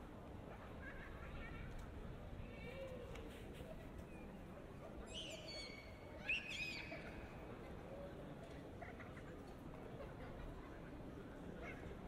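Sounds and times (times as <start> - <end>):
hum of pedestrian street: 0.0 - 12.0.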